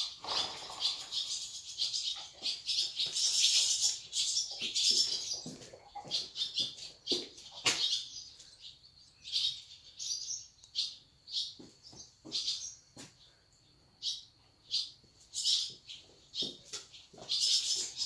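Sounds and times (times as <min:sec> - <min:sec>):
small birds chirping: 0:00.0 - 0:18.0.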